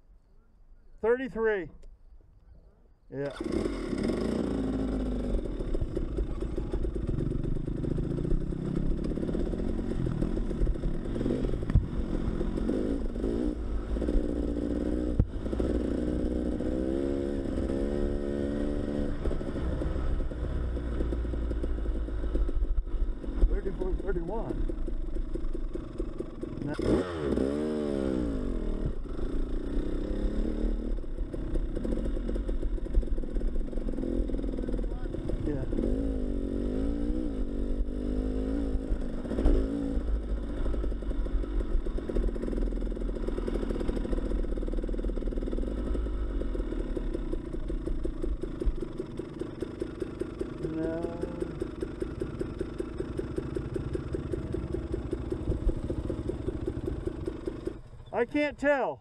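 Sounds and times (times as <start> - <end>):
dirt bike engine revving: 3.2 - 59.0.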